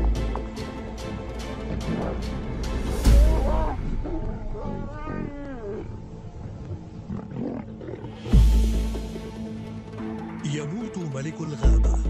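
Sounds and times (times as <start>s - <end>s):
background music: 0.0s - 12.0s
lion growling and snarling: 1.1s - 8.8s.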